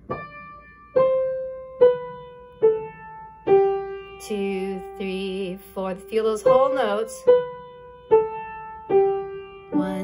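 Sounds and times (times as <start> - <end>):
piano notes: 0.0 - 10.0.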